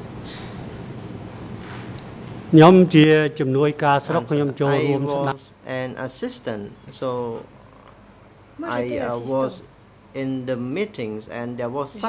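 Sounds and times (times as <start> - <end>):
person speaking: 2.6 - 5.5, 8.6 - 9.7.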